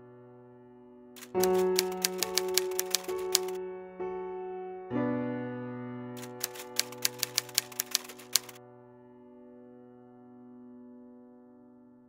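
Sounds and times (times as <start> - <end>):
typewriter keys clacking: 1.2 - 3.6, 6.2 - 8.6.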